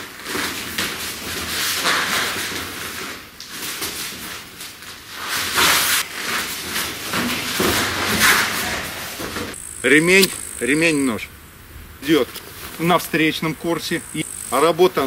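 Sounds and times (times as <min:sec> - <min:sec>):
clothing rustle: 0:00.0 - 0:09.6.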